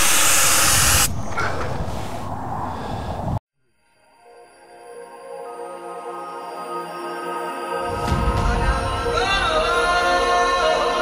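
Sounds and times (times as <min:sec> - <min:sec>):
air hissing out of tyre valve: 0:00.0 - 0:01.2.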